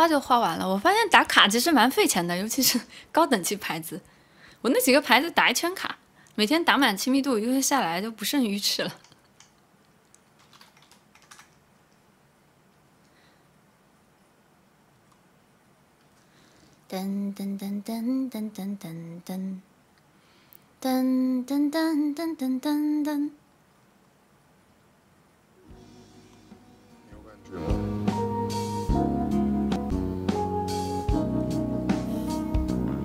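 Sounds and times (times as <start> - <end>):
keyboard typing: 9.0 - 12.0
pop backing track: 25.6 - 33.0.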